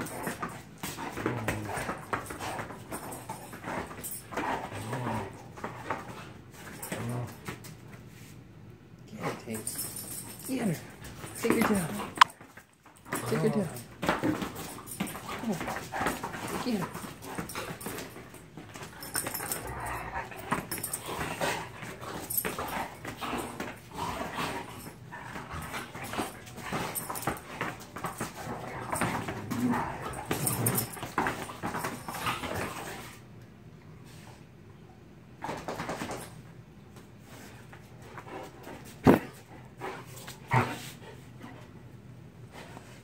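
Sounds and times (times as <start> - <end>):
dogs scuffling on carpet: 9.2 - 33.2
dog whines and grumbles: 13.2 - 13.9, 15.2 - 17.1, 28.8 - 31.0.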